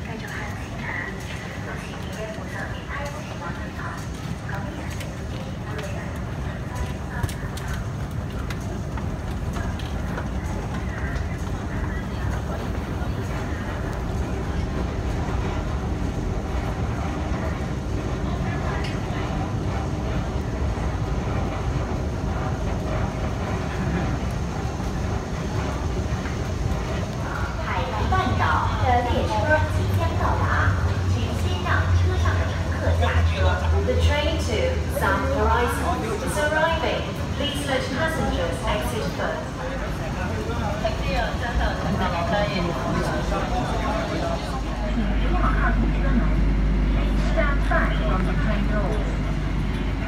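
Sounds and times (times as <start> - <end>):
people talking: 0.0 - 15.9, 16.5 - 50.0
low rumble: 8.0 - 34.0
deep loud hum: 44.4 - 50.0.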